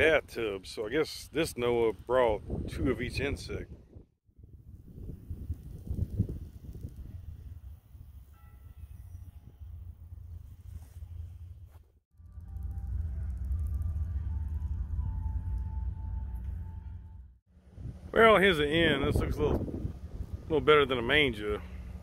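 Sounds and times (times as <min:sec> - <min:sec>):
wind buffeting microphone: 0:02.3 - 0:08.3, 0:17.7 - 0:22.0
faint music with held notes: 0:12.2 - 0:17.3.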